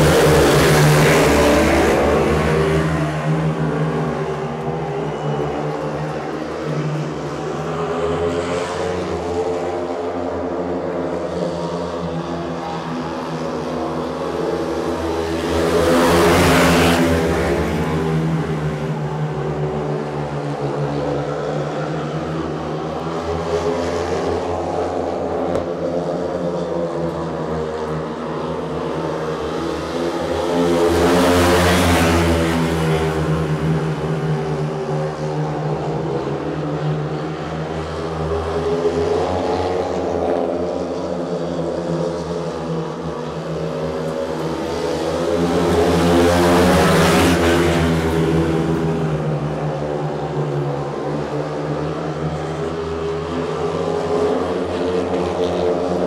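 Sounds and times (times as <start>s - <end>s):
motorcycles racing: 0.0s - 56.0s.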